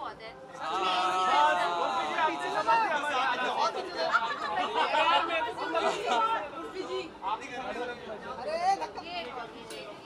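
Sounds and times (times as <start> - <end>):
several voices chattering: 0.0 - 10.0.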